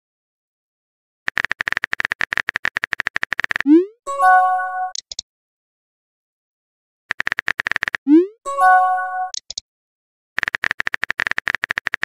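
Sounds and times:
keyboard typing clicks: 1.3s - 3.8s, 4.8s - 5.2s, 7.1s - 8.2s, 9.2s - 9.6s, 10.4s - 12.0s.

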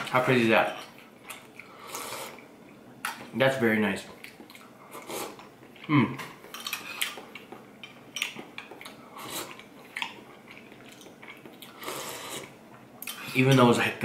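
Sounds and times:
slurping and eating: 1.3s - 2.5s, 4.2s - 6.0s, 8.2s - 13.4s.

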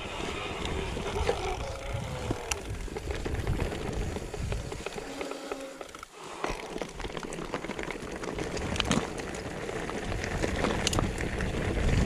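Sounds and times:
bike rattling over rough ground: 0.0s - 12.0s
wind rumbling on microphone: 0.0s - 12.0s.

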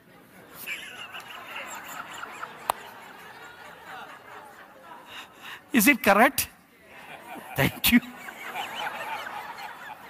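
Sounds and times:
congregation laughing: 0.4s - 5.7s, 6.9s - 10.0s.

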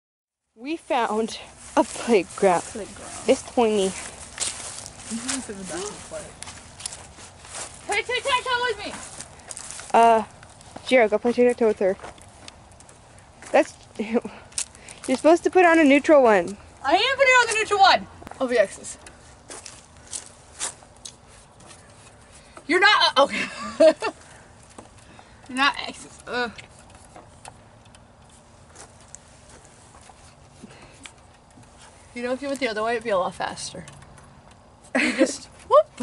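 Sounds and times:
soft footsteps: 0.7s - 33.0s.

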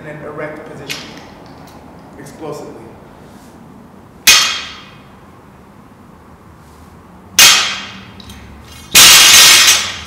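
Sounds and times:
sharp metallic clang: 4.2s - 5.0s, 7.4s - 10.0s.

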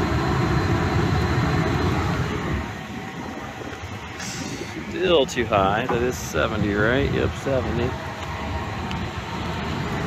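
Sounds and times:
burner and blower rumbling: 0.0s - 10.0s.

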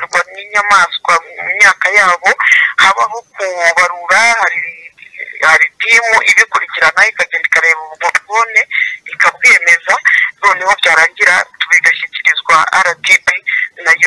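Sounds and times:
person talking over telephone: 0.0s - 14.0s.

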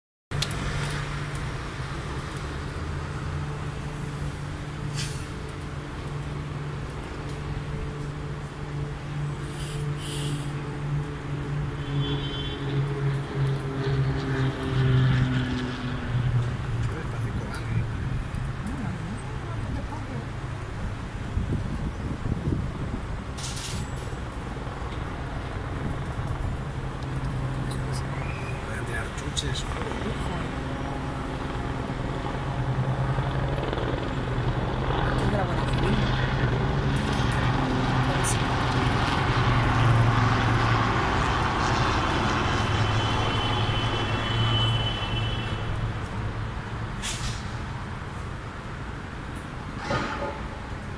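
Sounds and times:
city background noise: 0.3s - 50.9s
distant helicopter rotors droning: 0.4s - 23.4s, 24.1s - 46.8s.

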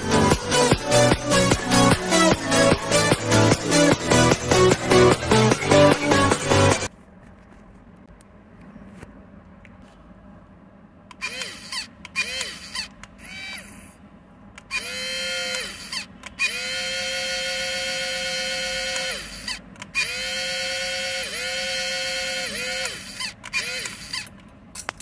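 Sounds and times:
small electric motors whining: 11.1s - 14.0s, 14.6s - 24.3s.

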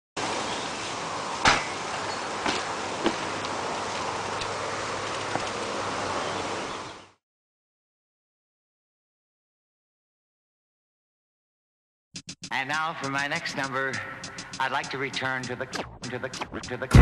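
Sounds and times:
outdoor background noise: 0.2s - 7.2s
bike knocking on concrete: 1.5s - 5.6s.

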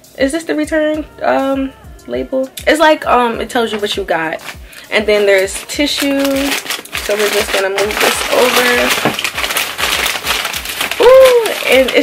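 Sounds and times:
tissue paper rustling and crinkling: 3.6s - 12.0s.

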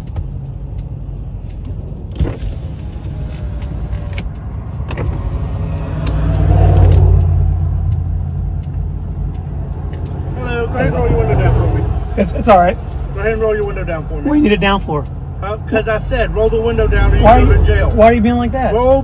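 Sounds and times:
sharp clicks: 0.0s - 12.2s
car engine low rumble: 0.0s - 19.0s.

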